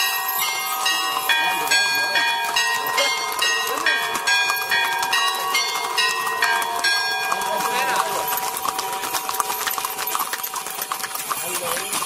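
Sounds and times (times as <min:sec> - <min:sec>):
church bells pealing: 0:00.0 - 0:10.8.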